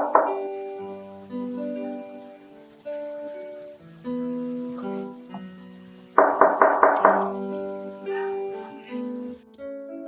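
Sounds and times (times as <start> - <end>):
knuckles knocking on wooden door: 0.0 - 0.4, 6.2 - 7.4
background music: 0.0 - 10.0.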